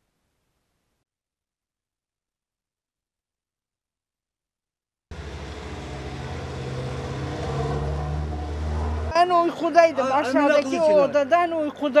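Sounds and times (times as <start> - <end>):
bus engine passing: 5.1 - 11.4.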